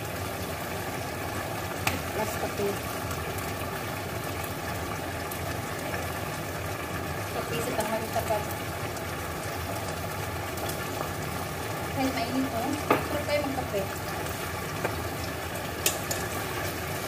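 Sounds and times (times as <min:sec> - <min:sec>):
chicken sizzling in a frying pan: 0:00.0 - 0:17.0.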